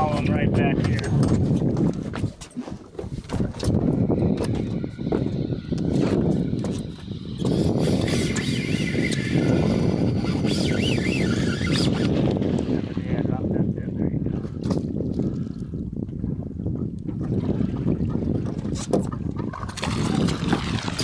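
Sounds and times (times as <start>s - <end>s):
water against boat hull: 0.0s - 13.3s, 14.2s - 21.0s
wind buffeting microphone: 0.0s - 21.0s.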